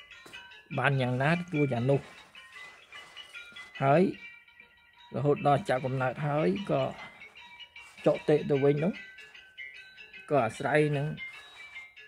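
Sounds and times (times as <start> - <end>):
soft background music: 0.0 - 12.0
man speaking: 0.8 - 2.2, 5.2 - 7.0, 8.0 - 9.0, 10.3 - 11.2.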